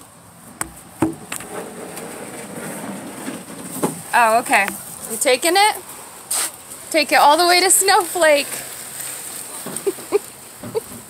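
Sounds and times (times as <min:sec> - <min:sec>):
handling knocks on microphone: 0:00.6 - 0:01.5
rubbing scrape: 0:01.2 - 0:04.1.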